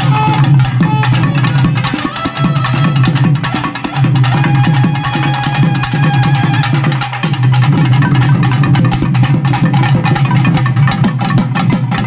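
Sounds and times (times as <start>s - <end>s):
held drone and melody: 0.0s - 12.0s.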